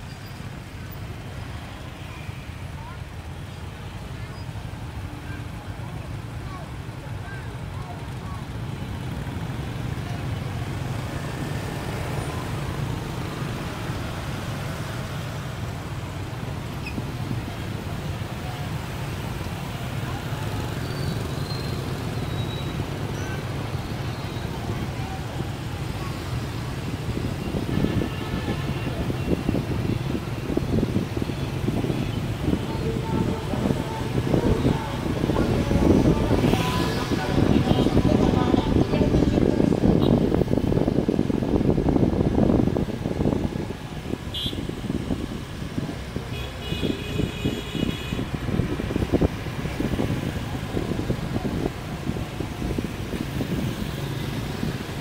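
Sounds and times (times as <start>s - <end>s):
motorbike engines: 0.0s - 55.0s
road noise: 0.0s - 55.0s
faint voices: 1.1s - 14.0s, 14.8s - 41.6s.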